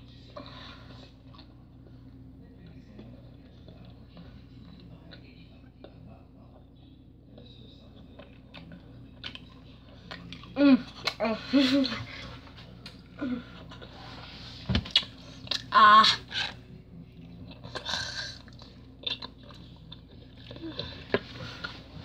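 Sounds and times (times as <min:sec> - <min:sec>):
wet chewing clicks and smacks: 0:18.4 - 0:20.6.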